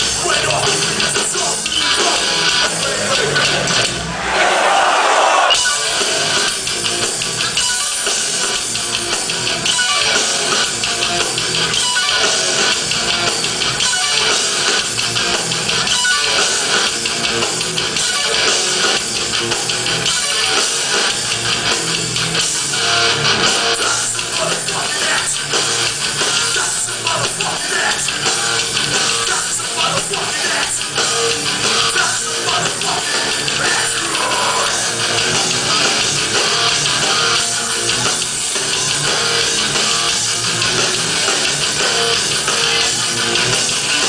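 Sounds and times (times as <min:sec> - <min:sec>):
bass guitar: 0:00.0 - 0:04.4, 0:05.6 - 0:44.0
electric guitars: 0:00.0 - 0:04.4, 0:05.4 - 0:44.0
drum kit: 0:00.0 - 0:44.0.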